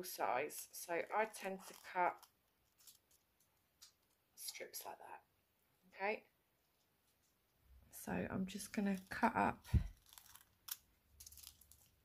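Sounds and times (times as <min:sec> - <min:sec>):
foil crinkling: 0:00.6 - 0:03.4, 0:08.8 - 0:12.0
scissors snipping foil: 0:09.9 - 0:12.0.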